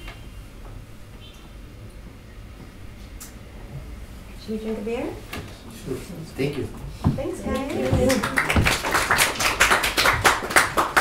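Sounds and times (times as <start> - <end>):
audience clapping: 7.4 - 11.0.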